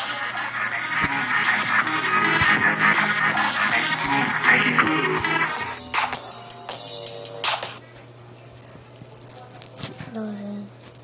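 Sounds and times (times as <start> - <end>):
electronic horror loop: 0.0 - 7.8.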